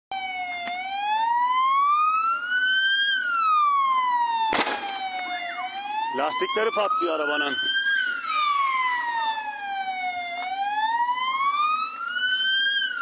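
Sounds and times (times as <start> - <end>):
emergency vehicle siren wailing: 0.1 - 13.0
tyre bursting bang: 4.6 - 5.0.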